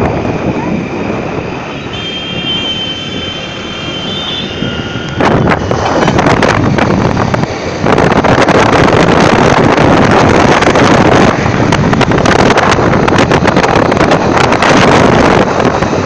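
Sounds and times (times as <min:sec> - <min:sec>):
wind buffeting microphone: 0:00.0 - 0:02.0, 0:04.5 - 0:16.0
road and engine noise: 0:00.0 - 0:16.0.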